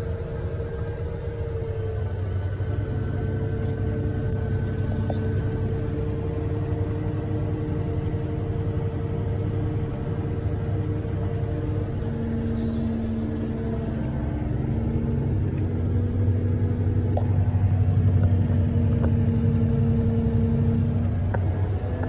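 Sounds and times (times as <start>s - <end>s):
engine humming: 0.0s - 22.0s.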